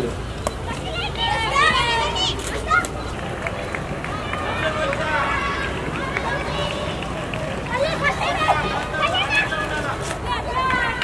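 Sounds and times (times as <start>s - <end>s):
outdoor background noise: 0.0s - 11.0s
voices calling: 0.0s - 11.0s.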